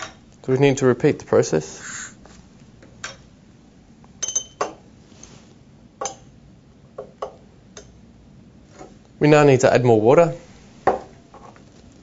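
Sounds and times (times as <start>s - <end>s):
glassware clinking: 4.2s - 4.8s, 6.0s - 6.3s.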